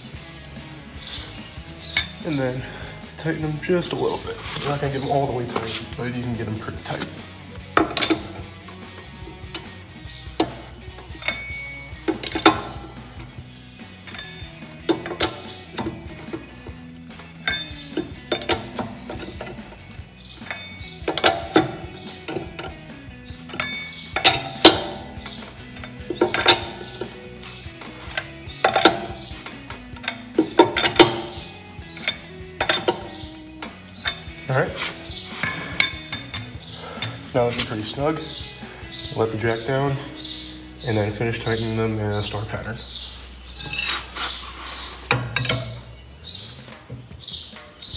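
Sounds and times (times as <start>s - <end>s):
background music: 0.0s - 47.9s
socket wrench clicking on lug nuts: 7.6s - 34.5s, 35.1s - 37.7s.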